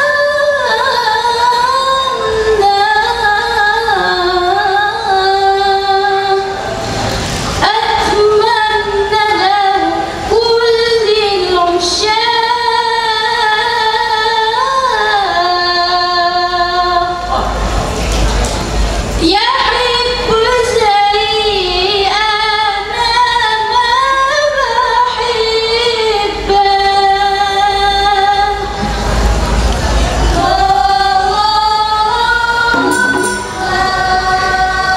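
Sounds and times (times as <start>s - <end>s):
woman singing over a pa: 30.4s - 34.9s
noisy rushing sound: 32.8s - 34.8s.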